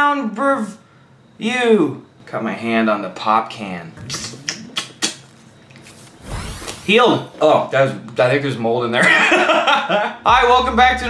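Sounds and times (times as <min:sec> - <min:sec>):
wet sucking sound: 0:04.0 - 0:07.4.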